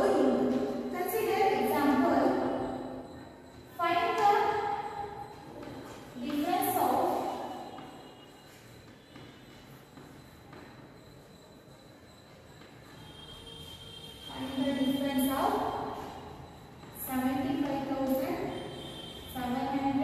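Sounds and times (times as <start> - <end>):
woman speaking: 0.0 - 2.7, 3.8 - 4.8, 6.1 - 7.5, 14.3 - 15.8, 17.0 - 18.6, 19.3 - 20.0.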